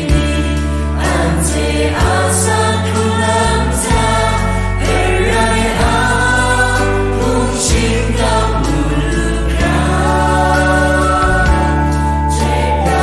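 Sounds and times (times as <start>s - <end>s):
bass notes: 0.0s - 13.0s
worship song singing: 0.0s - 13.0s.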